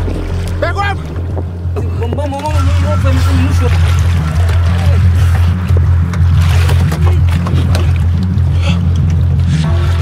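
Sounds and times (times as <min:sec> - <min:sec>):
background music with bass line: 0:00.0 - 0:10.0.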